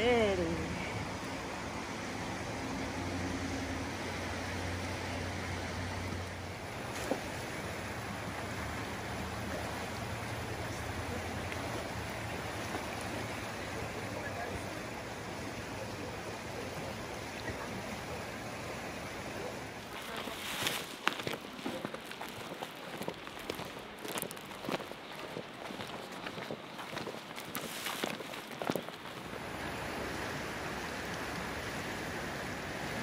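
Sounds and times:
river water rushing: 0.0s - 33.0s
footsteps on gravel: 19.8s - 29.4s.

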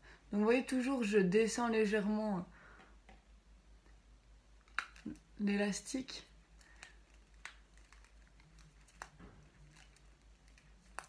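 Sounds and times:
low steady hum: 0.0s - 11.0s
elastic band clicks and rustles: 6.5s - 11.0s.

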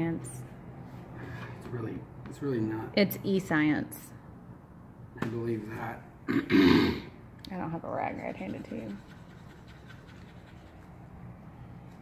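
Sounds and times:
faint scratching and ticks: 8.1s - 10.9s.

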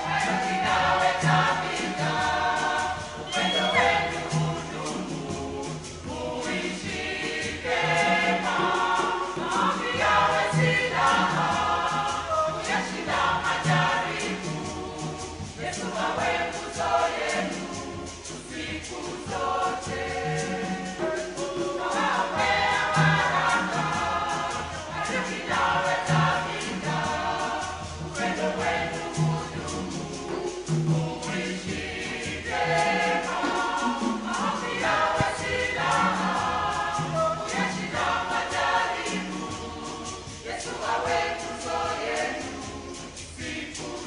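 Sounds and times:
choir singing gospel song: 0.0s - 44.0s.

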